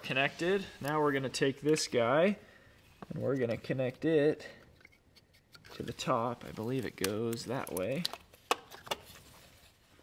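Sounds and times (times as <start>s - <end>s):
handling wires: 0.0s - 10.0s
plastic connectors clicking: 6.9s - 9.0s.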